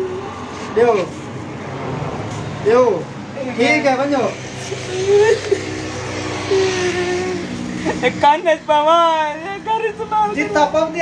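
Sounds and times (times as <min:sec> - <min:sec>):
low engine-like hum: 0:04.4 - 0:08.1
man wailing: 0:04.9 - 0:08.2.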